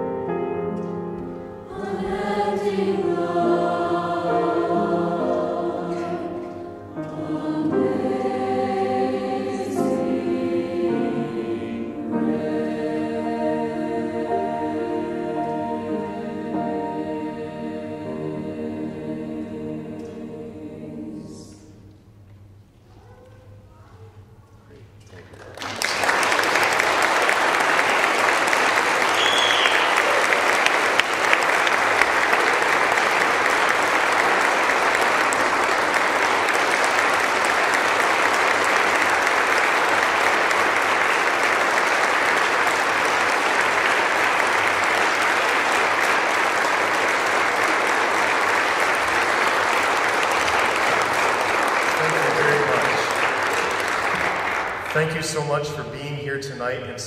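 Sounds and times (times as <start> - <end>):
audience applauding: 25.1 - 55.5
short whistle: 29.1 - 30.0.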